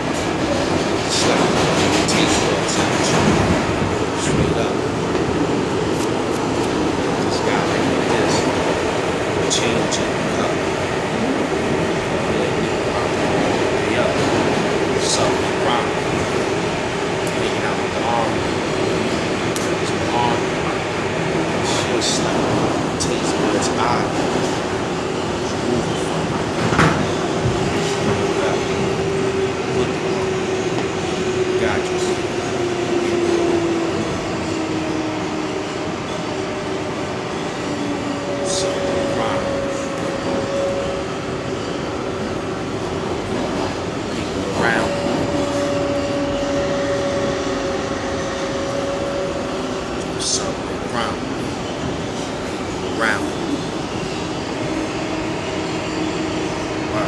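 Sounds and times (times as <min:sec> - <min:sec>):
subway car rumble and drone: 0:00.0 - 0:57.0.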